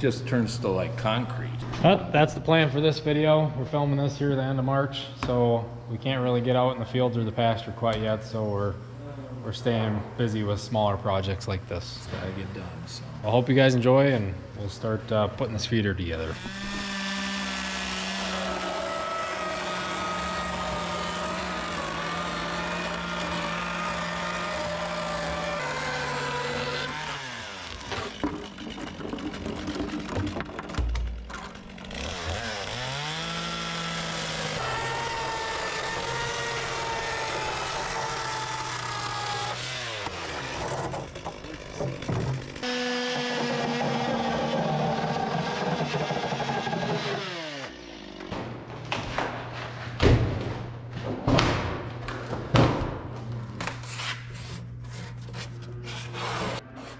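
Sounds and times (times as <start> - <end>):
chainsaw cutting plastic: 16.2 - 48.3.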